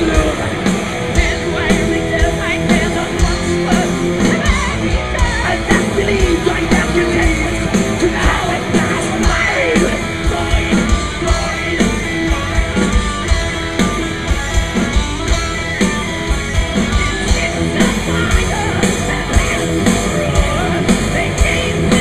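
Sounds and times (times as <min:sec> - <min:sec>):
bass guitar: 0:00.0 - 0:22.0
distorted electric guitars: 0:00.0 - 0:22.0.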